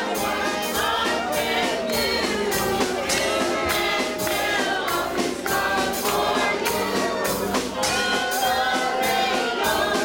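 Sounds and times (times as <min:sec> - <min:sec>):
band instruments with steady beat: 0:00.0 - 0:10.0
congregation singing worship song: 0:00.0 - 0:10.0.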